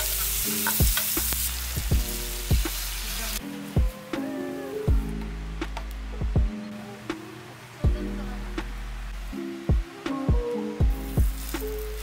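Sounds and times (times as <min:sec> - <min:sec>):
food sizzling in a frying pan: 0:00.0 - 0:04.9, 0:10.8 - 0:12.0
background music with steady beat: 0:00.0 - 0:12.0.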